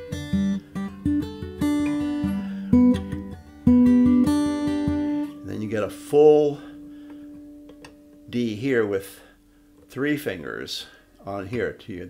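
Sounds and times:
fingerpicked acoustic guitar: 0.0s - 8.5s.

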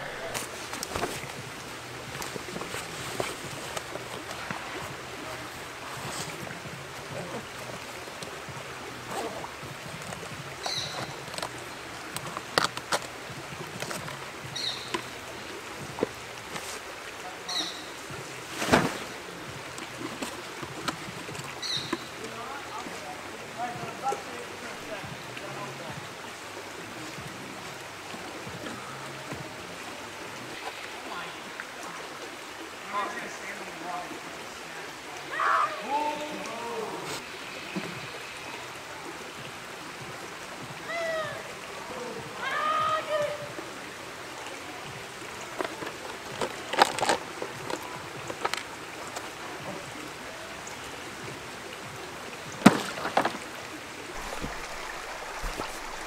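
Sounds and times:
creek water running: 0.0s - 56.0s.

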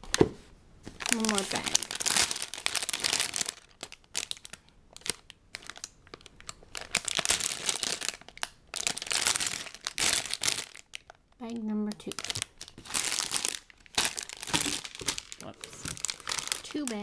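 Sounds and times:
plastic bags crinkling: 0.9s - 17.0s.

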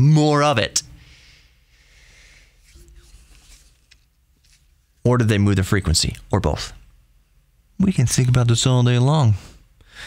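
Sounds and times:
low steady hum: 0.0s - 10.0s
soft breathing: 0.9s - 3.6s, 9.3s - 10.0s.

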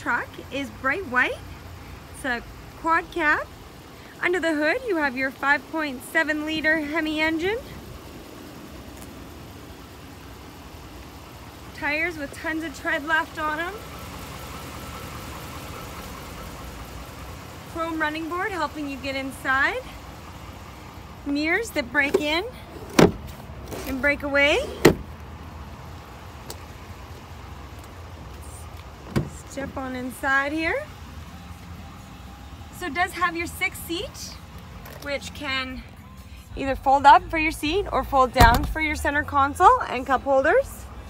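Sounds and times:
low background rumble: 0.0s - 41.0s
steady low rumble: 25.0s - 41.0s.

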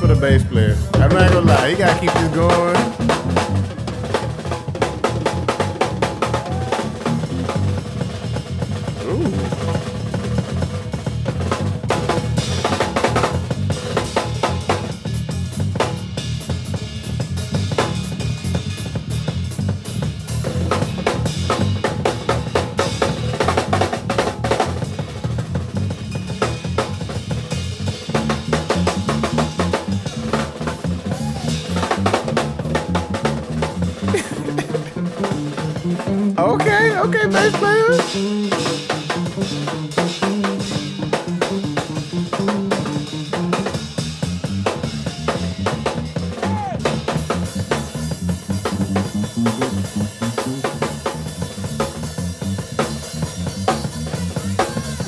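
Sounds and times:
bass guitar groove: 0.0s - 55.0s
drum kit solo: 0.0s - 55.0s.

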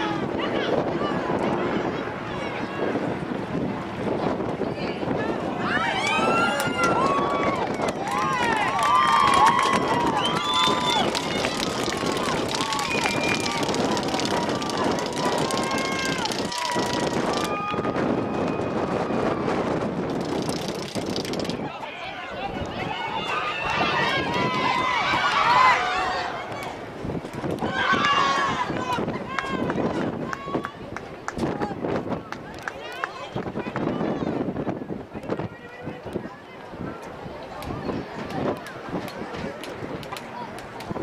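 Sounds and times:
open-air noise: 0.0s - 41.0s
people shouting and calling out: 4.6s - 19.6s, 21.6s - 26.9s, 27.5s - 31.9s.

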